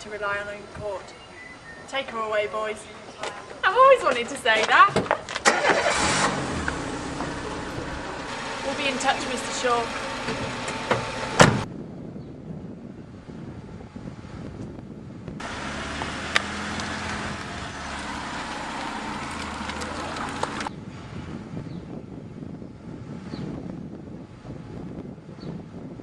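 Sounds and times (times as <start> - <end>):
street background noise: 0.0 - 23.3
car engine running: 5.5 - 11.7, 15.4 - 20.7.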